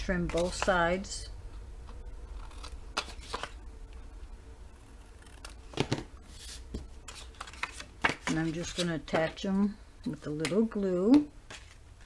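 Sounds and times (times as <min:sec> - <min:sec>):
card being handled: 0:02.4 - 0:03.6, 0:05.3 - 0:09.4.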